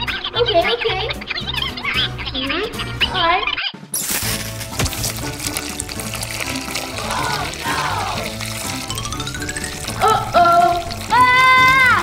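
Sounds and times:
background music: 0.0 - 12.0
liquid gushing and splashing: 4.0 - 12.0.

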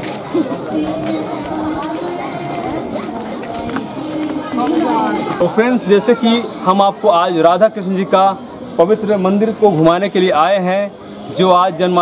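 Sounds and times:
footsteps on paved path: 0.0 - 6.6
crowd chatter: 0.0 - 12.0.

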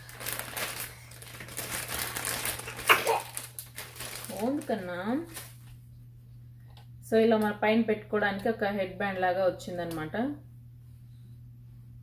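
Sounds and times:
plastic packaging crinkling: 0.0 - 5.8.

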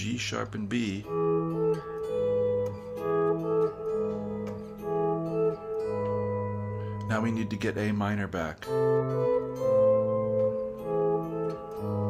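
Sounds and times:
electric guitar fingerpicking: 0.0 - 12.0.

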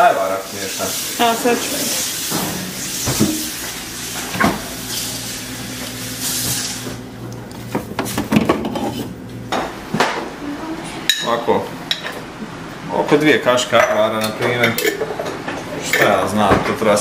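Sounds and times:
pot hissing on stove: 0.0 - 7.0.

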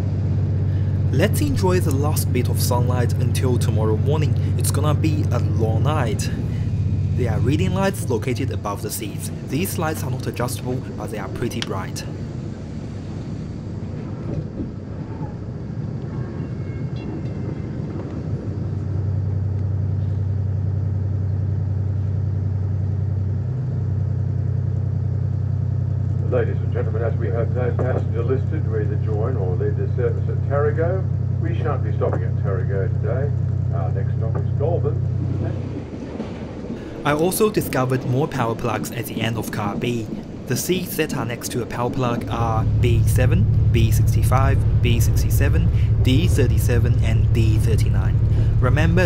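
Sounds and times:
diesel engine hum: 0.0 - 16.1, 17.5 - 49.0
train running noise: 0.0 - 49.0
people talking: 0.7 - 6.6, 7.2 - 12.2, 26.2 - 35.7, 36.8 - 49.0.

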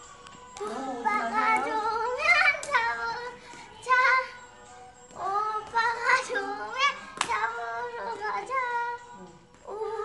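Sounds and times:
girl singing with music: 0.0 - 10.0.

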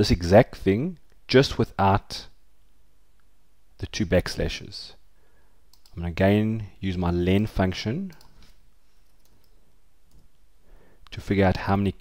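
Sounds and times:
low room hiss: 0.0 - 12.0
computer mouse clicks: 5.7 - 6.0, 8.1 - 10.3.

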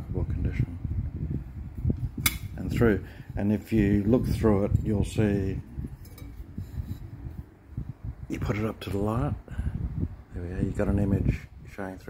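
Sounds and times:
porcelain stein handling noise: 5.9 - 7.1.

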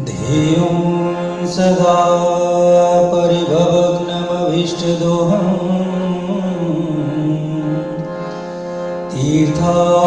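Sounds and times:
devotional chanting: 0.0 - 10.0
steady drone: 0.0 - 10.0.

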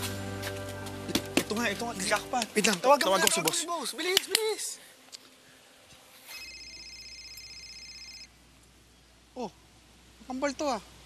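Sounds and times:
mobile phone ringing: 6.3 - 8.3.

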